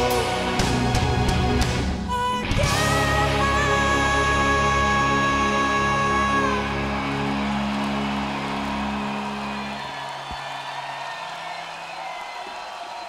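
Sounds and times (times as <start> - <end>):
crowd cheering: 5.1 - 13.0.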